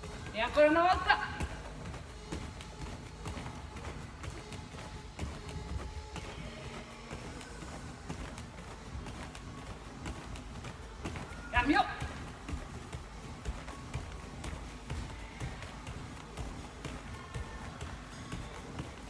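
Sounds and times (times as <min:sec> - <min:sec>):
bare feet thudding on mats: 0:00.0 - 0:19.0
faint background music: 0:00.0 - 0:19.0.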